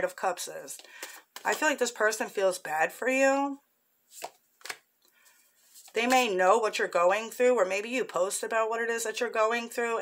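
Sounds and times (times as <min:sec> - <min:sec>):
cards snapping: 0:04.2 - 0:04.8.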